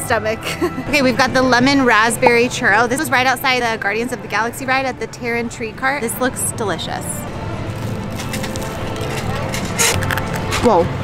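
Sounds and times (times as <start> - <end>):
crisp crackles of chewing: 7.8 - 10.5.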